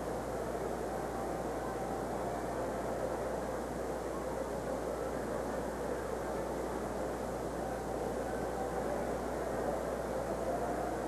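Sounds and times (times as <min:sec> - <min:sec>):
arena crowd murmur: 0:00.0 - 0:11.0
tape hiss: 0:00.0 - 0:11.0.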